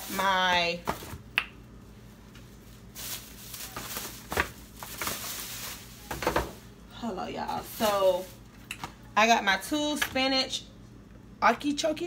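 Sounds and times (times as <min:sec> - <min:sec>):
plastic bag rustling: 0:02.0 - 0:08.6.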